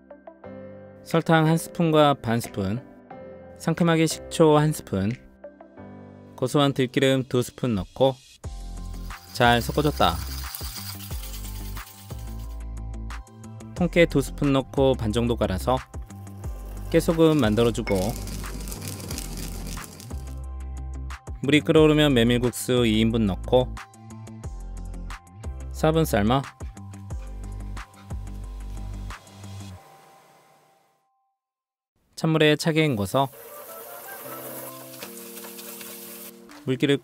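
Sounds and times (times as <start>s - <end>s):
soft background music chords: 8.4s - 30.8s
pestle grinding seeds in bowl: 9.0s - 12.6s, 16.2s - 20.3s
tap water running into colander: 33.3s - 36.3s.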